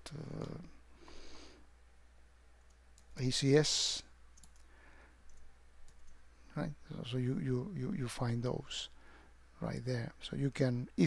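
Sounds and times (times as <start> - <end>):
low steady hum: 0.0 - 11.0
computer mouse clicks: 4.4 - 4.7, 5.3 - 6.2.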